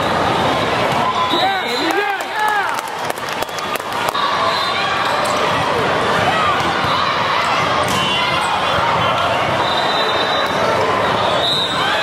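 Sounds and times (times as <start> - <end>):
din of many voices: 0.0 - 12.0.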